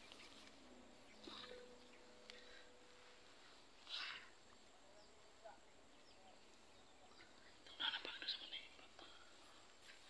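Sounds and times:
person whispering: 0:07.6 - 0:09.5.

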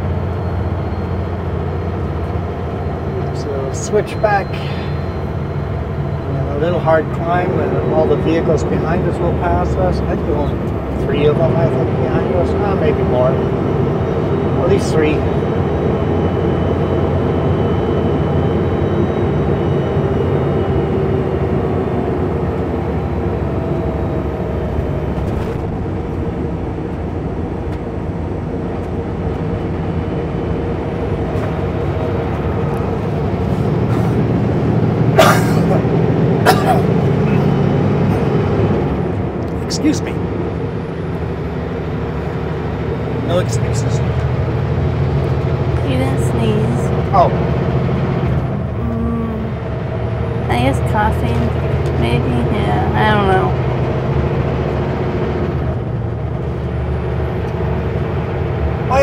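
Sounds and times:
truck diesel engine droning: 0:00.0 - 0:59.0.

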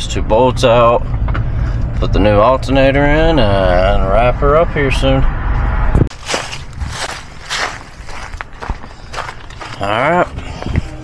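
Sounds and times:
footsteps outdoors: 0:06.0 - 0:11.0.

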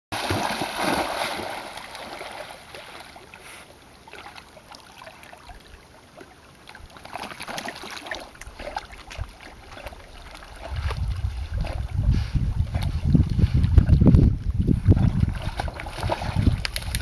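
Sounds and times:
water splashing from dogs swimming: 0:00.2 - 0:17.0
wind rumble on microphone: 0:08.5 - 0:17.0.

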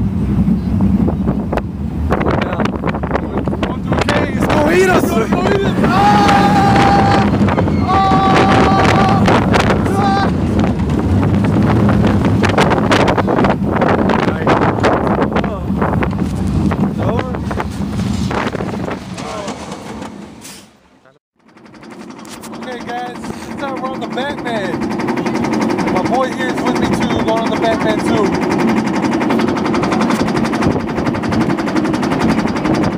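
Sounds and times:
wind rushing over microphone: 0:00.0 - 0:20.4, 0:24.4 - 0:32.9
roller coaster rumbling on track: 0:00.0 - 0:32.9
riders screaming: 0:04.2 - 0:10.8.

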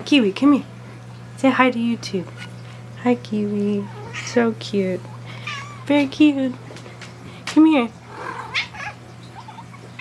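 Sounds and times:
cat giving soft calls: 0:05.4 - 0:05.9, 0:08.1 - 0:09.8.

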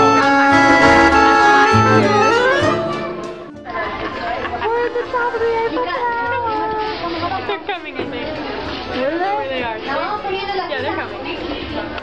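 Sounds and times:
indistinct chatter of voices: 0:02.1 - 0:12.0.

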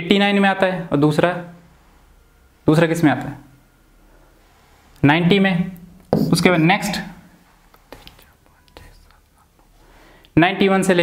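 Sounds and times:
man's voice: 0:05.1 - 0:07.1.

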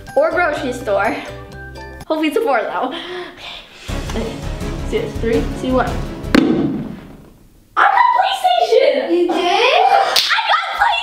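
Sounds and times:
background music: 0:00.0 - 0:07.6
dart thud: 0:06.3 - 0:07.4.

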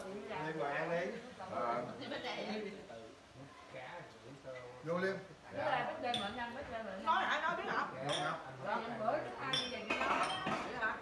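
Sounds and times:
glass bottles clinking: 0:08.0 - 0:08.4, 0:09.4 - 0:10.8
table chatter: 0:09.3 - 0:11.0.

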